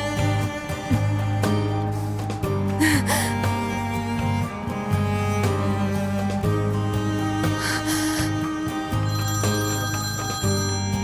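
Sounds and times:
background music: 0.0s - 11.0s
mobile phone ringing: 9.1s - 11.0s.

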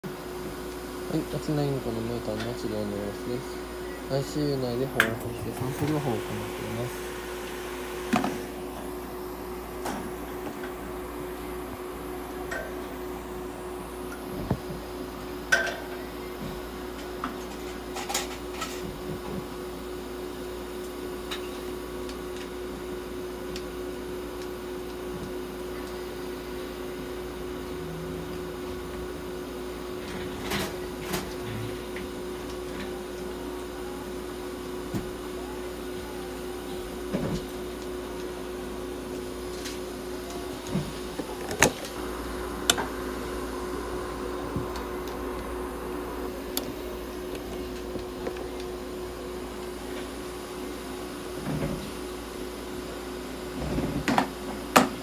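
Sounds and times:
steady equipment hum: 0.0s - 55.0s.

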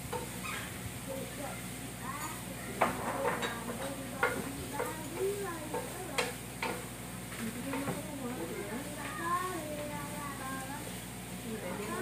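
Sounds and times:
food sizzling: 0.0s - 12.0s
spatula knocking against pan: 2.8s - 6.9s.

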